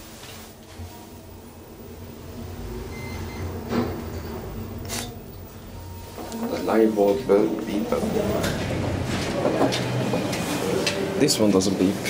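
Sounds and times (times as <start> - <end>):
elevator mechanical rumble: 0.7 - 12.0
elevator door clunk: 2.9 - 11.2.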